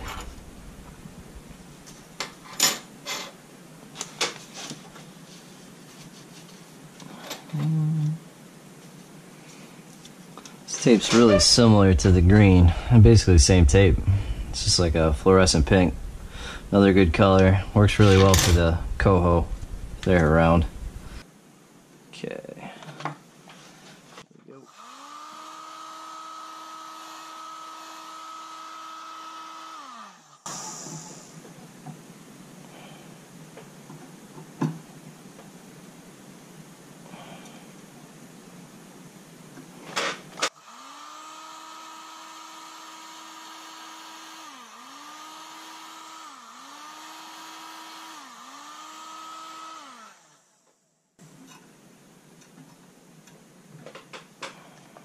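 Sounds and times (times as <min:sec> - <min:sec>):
heat gun fan motor running: 0:11.6 - 0:21.2, 0:24.7 - 0:30.7, 0:40.5 - 0:50.8.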